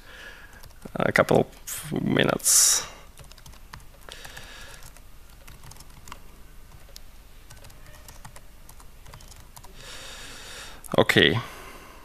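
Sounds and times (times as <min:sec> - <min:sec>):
laptop keyboard typing: 0:00.4 - 0:01.0, 0:03.2 - 0:09.8.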